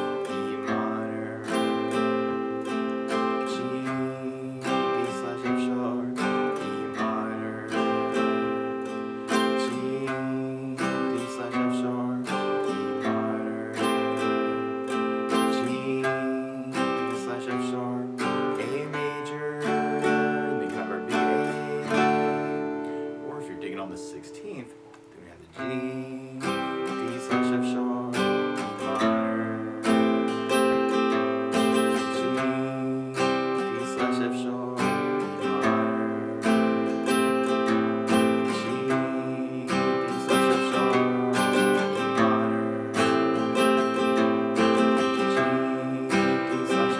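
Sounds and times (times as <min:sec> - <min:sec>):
acoustic guitar strumming: 0:00.0 - 0:46.9.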